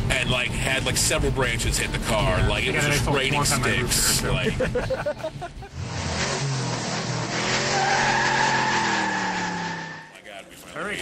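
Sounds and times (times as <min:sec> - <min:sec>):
tyre squeal: 0:07.4 - 0:10.2.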